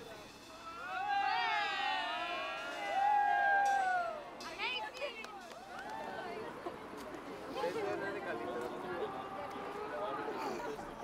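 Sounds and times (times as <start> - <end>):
group whooping and cheering: 0.7 - 4.3.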